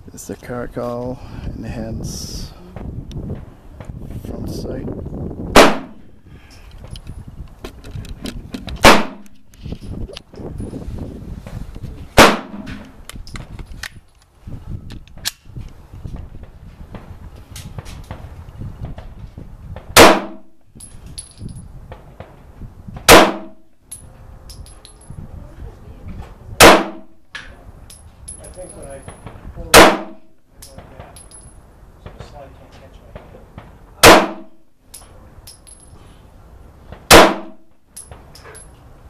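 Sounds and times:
pistol shots: 5.5 - 6.0, 8.8 - 9.4, 12.2 - 12.9, 20.0 - 20.5, 23.1 - 23.6, 26.6 - 27.1, 29.7 - 30.3, 34.0 - 34.6, 37.1 - 37.6.

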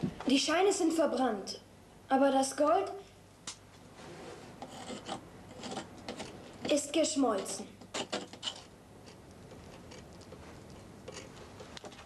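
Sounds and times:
knife blade scraping soot: 4.6 - 6.3.

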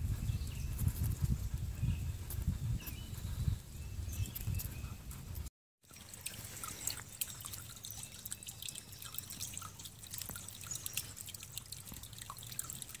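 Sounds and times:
water drips and plinks: 5.8 - 13.0
water trickling over rocks: 5.8 - 13.0.

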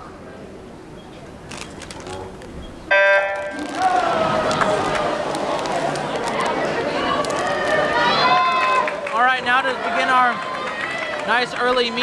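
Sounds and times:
crowd cheering and shouting: 3.2 - 12.0.

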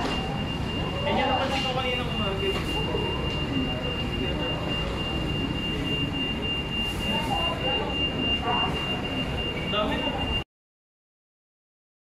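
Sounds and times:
faint voices: 0.0 - 10.4
high-pitched electronic tone: 0.0 - 10.4.

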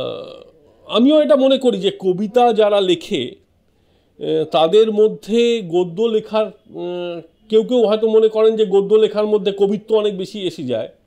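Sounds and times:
drawn-out vocal sound: 0.0 - 1.0
man speaking: 0.0 - 3.5, 4.2 - 11.0.

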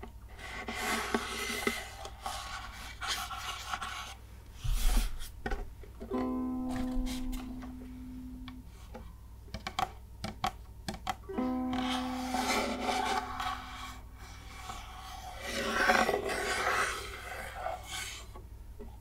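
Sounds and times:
ukulele open strings ringing: 6.1 - 8.6, 11.3 - 12.3
fingertips scratching on wood: 11.8 - 18.3.

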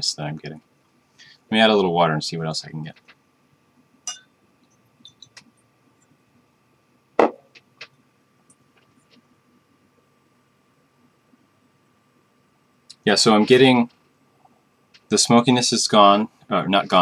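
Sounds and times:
glassware clinks and taps: 4.1 - 4.3, 5.0 - 5.4
glass knocking on desk: 7.2 - 7.5.

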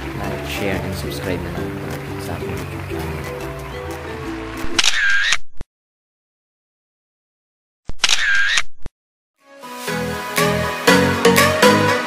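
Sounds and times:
camera shutter click: 4.7 - 5.4, 7.9 - 8.7.

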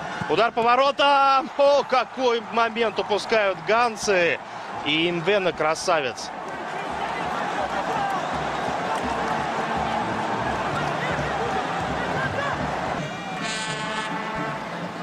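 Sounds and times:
stadium crowd noise: 0.0 - 15.0
horn toot: 13.1 - 14.7.

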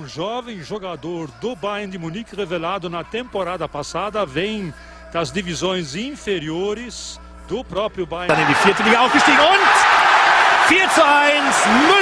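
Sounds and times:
commentator shouting: 8.3 - 12.0
stadium crowd noise: 8.3 - 12.0.

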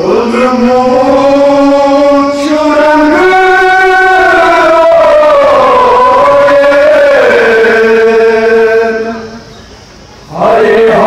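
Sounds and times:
person singing a long note: 0.0 - 9.5, 10.3 - 11.0.

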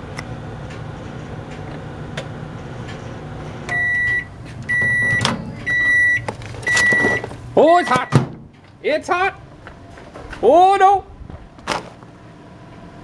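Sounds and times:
microwave oven humming: 0.0 - 13.0
microwave beeps: 3.7 - 8.3
microwave door clunk: 7.9 - 8.5.

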